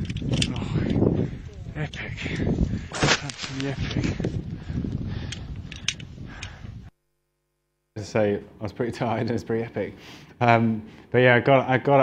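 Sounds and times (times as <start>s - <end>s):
wind noise on microphone: 0.0s - 6.9s.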